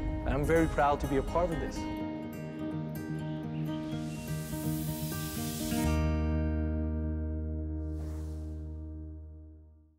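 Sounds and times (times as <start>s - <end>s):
high hiss: 3.7s - 6.1s.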